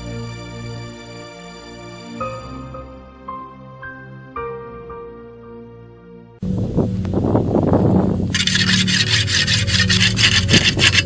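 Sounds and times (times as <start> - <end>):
blade sharpened on whetstone: 8.4 - 11.0.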